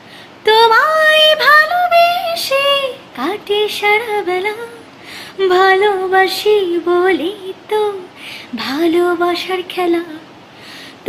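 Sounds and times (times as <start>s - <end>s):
woman singing unaccompanied: 0.3s - 10.4s.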